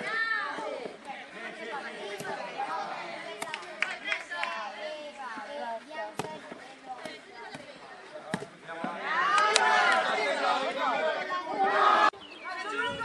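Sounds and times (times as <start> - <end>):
background chatter: 0.0 - 13.0
ball kicked thuds: 6.1 - 9.0
people shouting: 8.9 - 12.1.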